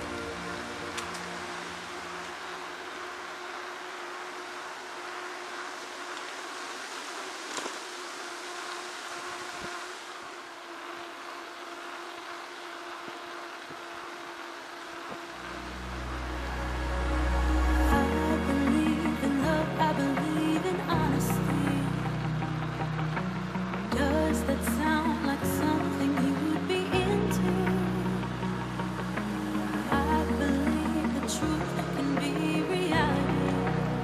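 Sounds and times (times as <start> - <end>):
bike tyres rolling on asphalt: 0.0 - 34.0.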